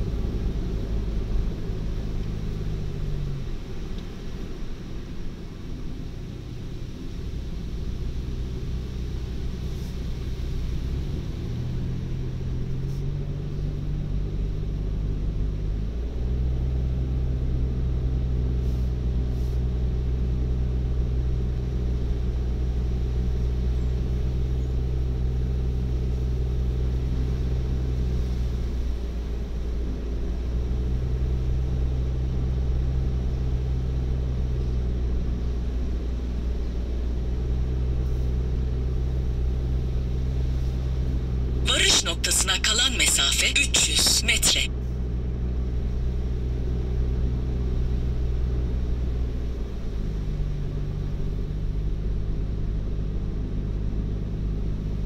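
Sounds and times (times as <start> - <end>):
car engine and tyre drone: 0.0 - 41.6.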